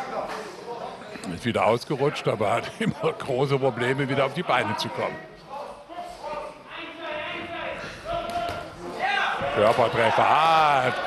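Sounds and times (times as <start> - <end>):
commentary: 0.0 - 11.0.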